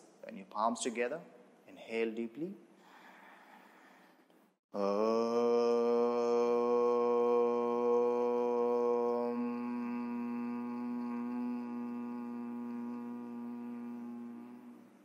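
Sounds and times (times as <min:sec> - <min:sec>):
man chanting om: 0:04.8 - 0:15.0.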